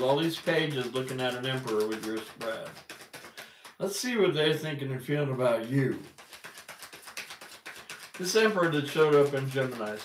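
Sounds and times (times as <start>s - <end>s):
cards being shuffled: 0.0s - 3.9s, 5.4s - 10.0s.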